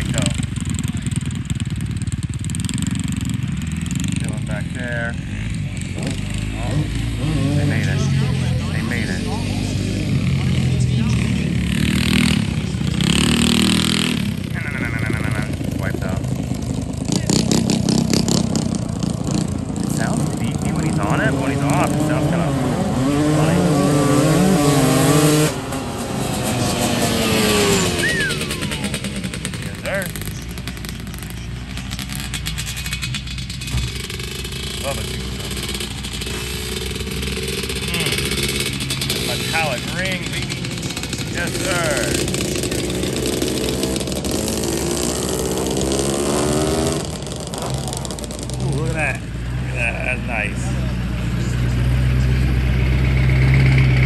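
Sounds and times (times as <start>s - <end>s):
racing engine revving: 0.0s - 54.0s.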